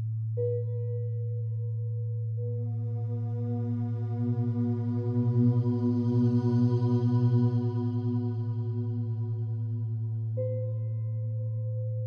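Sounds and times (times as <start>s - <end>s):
pulsing low drone music: 0.0s - 12.0s.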